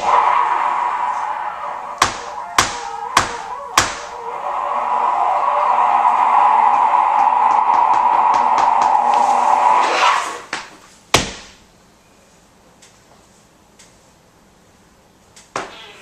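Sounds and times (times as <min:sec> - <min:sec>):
sharp knocks: 0:02.0 - 0:04.2, 0:07.2 - 0:09.2, 0:10.5 - 0:11.6.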